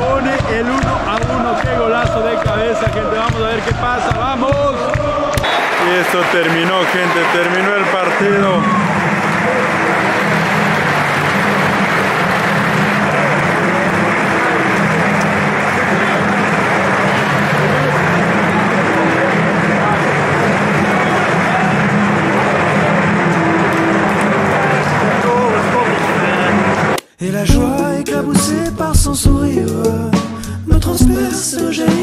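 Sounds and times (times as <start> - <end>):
stadium crowd din: 0.0 - 31.2.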